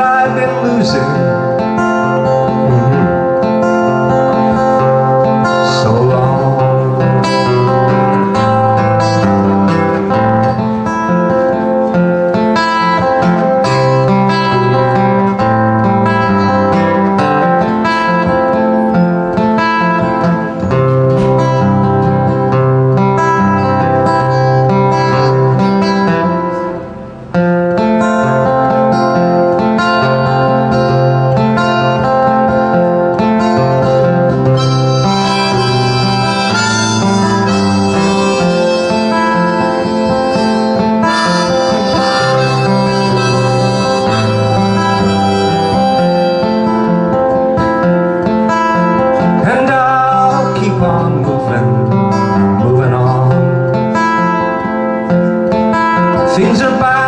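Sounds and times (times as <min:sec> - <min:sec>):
harmonica melody: 0:00.0 - 0:51.2
acoustic guitar: 0:00.0 - 0:57.0.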